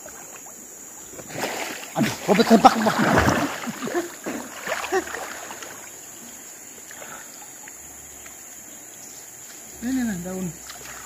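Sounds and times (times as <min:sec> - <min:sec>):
river water sloshing: 0:00.0 - 0:11.0.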